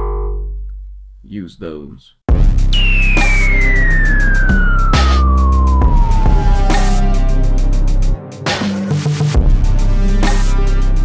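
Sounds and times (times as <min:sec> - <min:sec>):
high synth tone sliding downward: 0:02.7 - 0:08.2.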